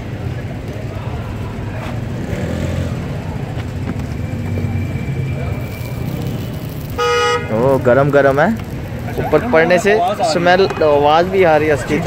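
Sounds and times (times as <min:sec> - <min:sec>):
faint voices: 0:00.0 - 0:12.0
low rumble of road traffic: 0:00.0 - 0:12.0.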